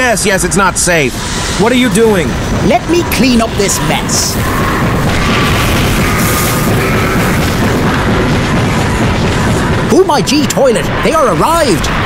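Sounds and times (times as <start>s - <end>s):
background music: 0.0s - 12.0s
explosion rumbling: 1.1s - 12.0s.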